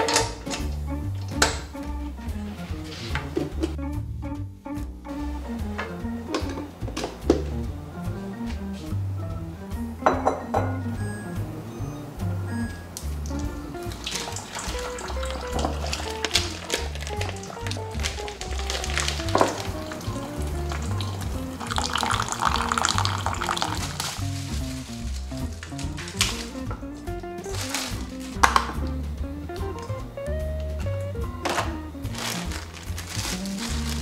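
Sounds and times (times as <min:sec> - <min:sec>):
light bouncy background music: 0:00.0 - 0:34.0
water pouring into a bowl: 0:13.4 - 0:25.2.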